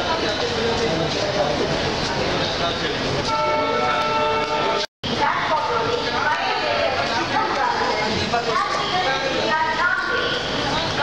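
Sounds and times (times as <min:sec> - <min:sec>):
train coaches rumbling: 0:00.0 - 0:11.0
voices on platform: 0:00.0 - 0:11.0
train horn: 0:03.3 - 0:04.9.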